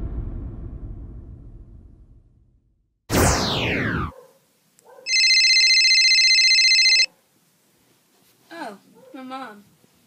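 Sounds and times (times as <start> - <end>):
mobile phone ringtone: 5.1 - 7.1.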